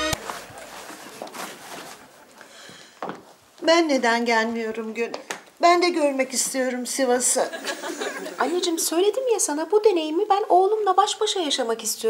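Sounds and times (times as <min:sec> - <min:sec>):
clothes rustling: 0:00.0 - 0:03.7.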